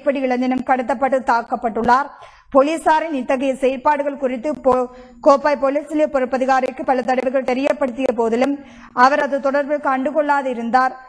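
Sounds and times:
newsreader speaking: 0.0 - 11.0.

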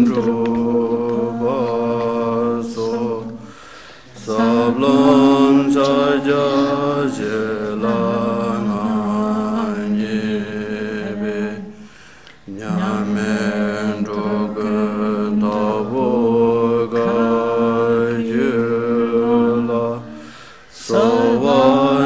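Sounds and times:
voices chanting prayer: 0.0 - 22.0.

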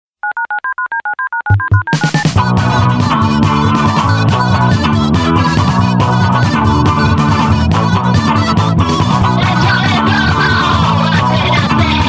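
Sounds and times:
telephone touch-tone dialling beeps: 0.2 - 2.4
low thumps of band music: 1.5 - 12.0.

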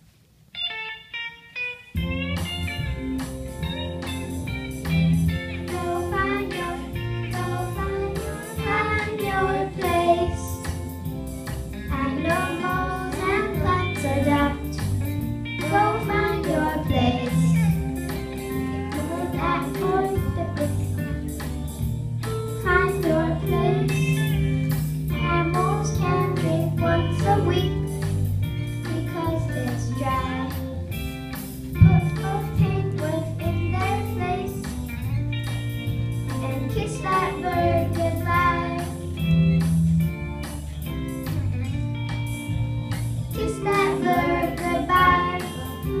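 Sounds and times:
instrumental accompaniment: 0.4 - 46.0
music with bass and beat: 2.0 - 46.0
children singing: 5.7 - 10.5, 12.0 - 14.7, 15.6 - 17.8, 18.6 - 21.1, 22.6 - 24.5, 25.2 - 27.8, 31.8 - 34.5, 36.4 - 39.0, 43.4 - 46.0.

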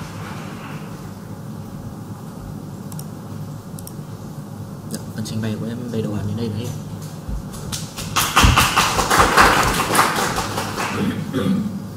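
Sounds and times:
group of people clapping: 7.5 - 11.2.

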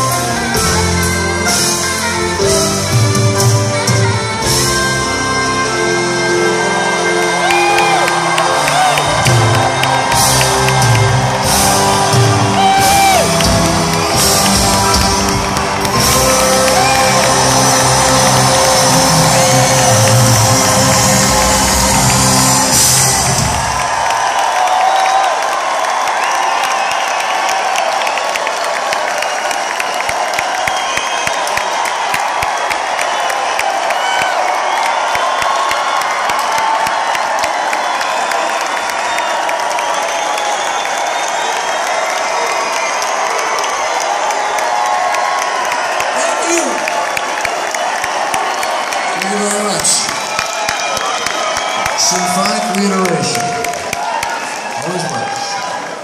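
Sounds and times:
live rock band with piano: 0.0 - 46.1
concert crowd cheering: 0.0 - 56.0.

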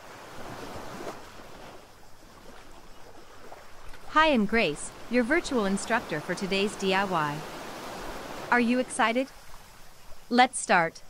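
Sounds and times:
ocean waves washing: 0.0 - 10.9.

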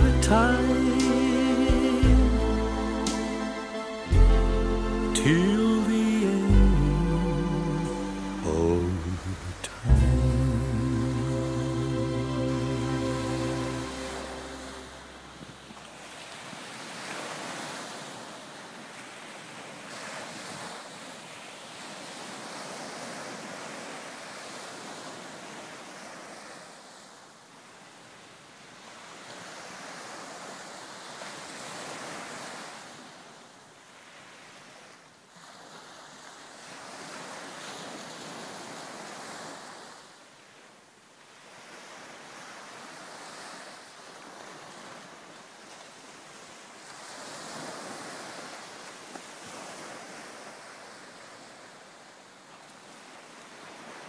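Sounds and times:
music: 0.0 - 15.2
ocean waves washing: 0.0 - 18.3.

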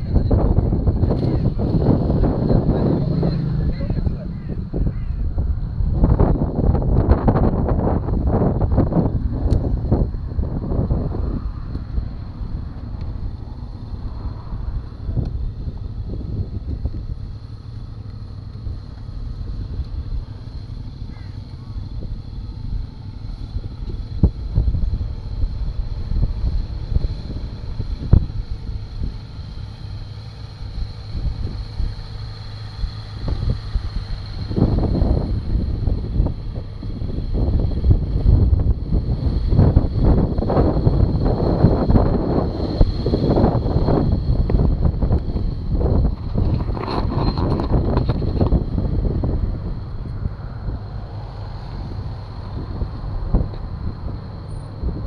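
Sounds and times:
low rumbling: 0.0 - 55.0
wind buffeting microphone: 0.0 - 55.0.

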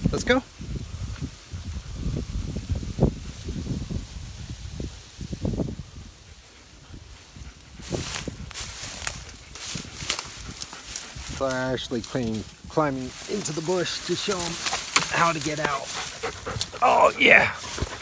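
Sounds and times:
dog rustling through undergrowth: 2.5 - 18.0
twigs snapping: 8.1 - 11.4, 13.2 - 17.0.

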